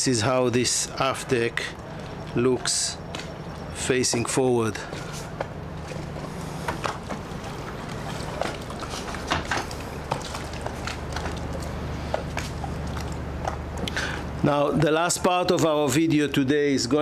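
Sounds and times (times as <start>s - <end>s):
low machinery hum: 0.0s - 17.0s.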